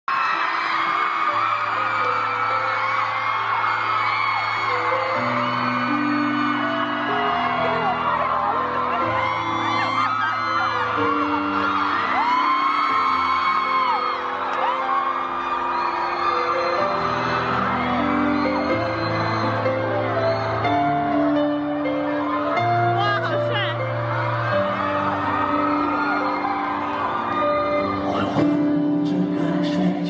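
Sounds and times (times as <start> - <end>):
crowd screaming and whooping: 0.0 - 30.0.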